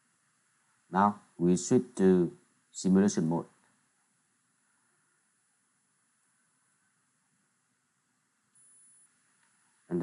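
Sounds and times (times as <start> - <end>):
faint recording hiss: 0.0 - 10.0
thin high-pitched steady tone: 8.4 - 10.0.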